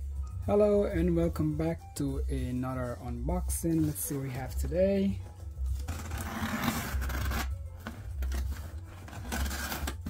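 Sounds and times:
packing tape tearing from cardboard: 5.8s - 10.0s.

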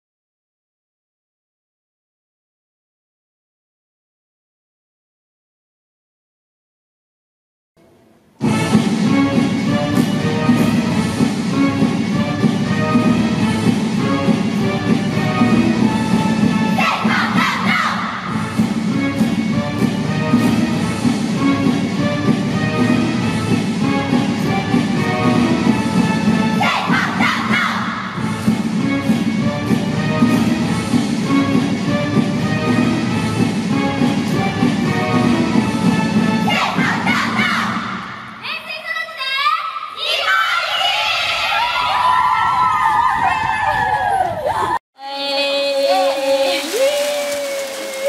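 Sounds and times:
backing music: 7.8s - 38.4s
cheerleaders shouting a cheer: 16.7s - 18.4s, 26.5s - 28.2s, 36.4s - 48.0s.

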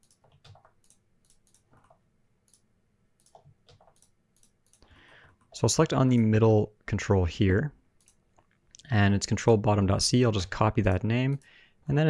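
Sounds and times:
computer mouse clicks: 0.0s - 2.6s, 3.2s - 6.2s, 8.0s - 8.9s
keyboard keys clicking: 0.0s - 2.6s.

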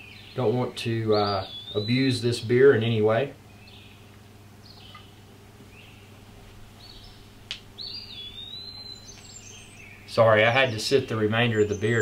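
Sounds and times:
faint bird chirps: 0.0s - 2.8s, 3.4s - 12.0s
steady low hum: 0.0s - 12.0s.

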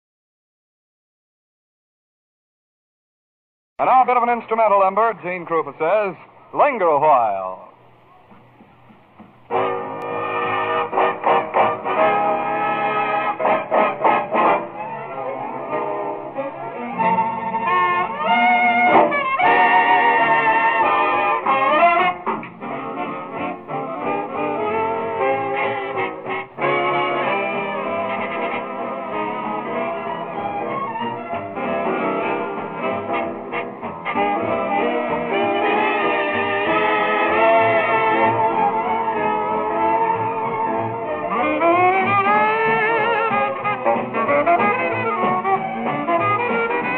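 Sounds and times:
swing big band playing: 8.3s - 46.9s
brass section: 9.5s - 46.9s.

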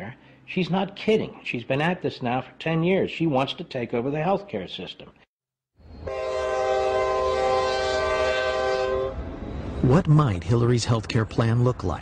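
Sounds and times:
train horn chord: 6.0s - 9.2s.

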